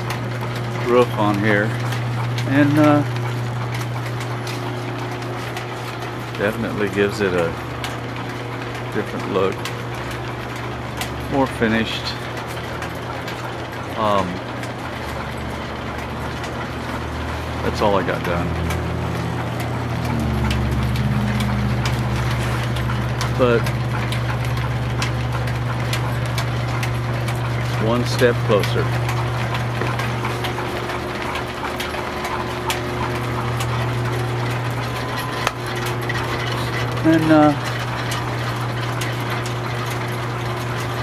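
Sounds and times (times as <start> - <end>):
belt pulleys humming: 0.0 - 41.0
machinery low drone: 17.3 - 41.0.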